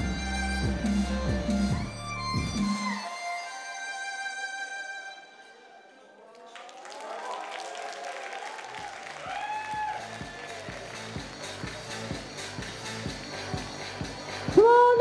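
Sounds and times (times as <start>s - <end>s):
music with steady low beat: 0.0s - 3.0s, 10.0s - 15.0s
audience applauding: 6.2s - 14.5s.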